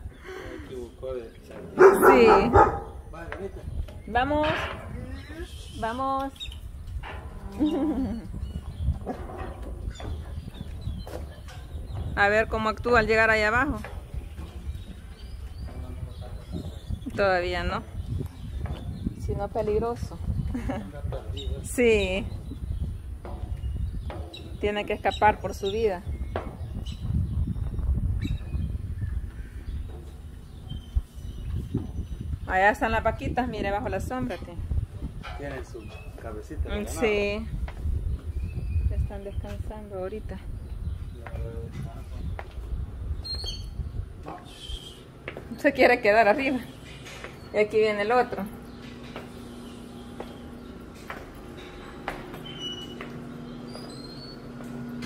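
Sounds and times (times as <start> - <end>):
wind buffeting microphone: 0.0 - 55.0
dog barking: 1.8 - 3.0.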